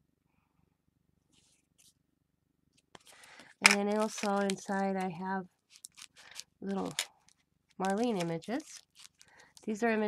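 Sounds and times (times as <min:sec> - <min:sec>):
card stock rustling: 0:03.0 - 0:10.0.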